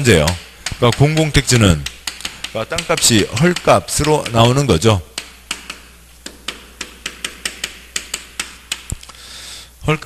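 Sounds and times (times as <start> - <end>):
chalk tapping on chalkboard: 0.0 - 9.0.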